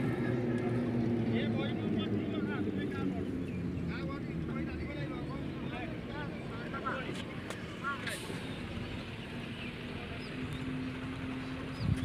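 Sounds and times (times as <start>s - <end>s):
distant indistinct voices: 0.0s - 12.0s.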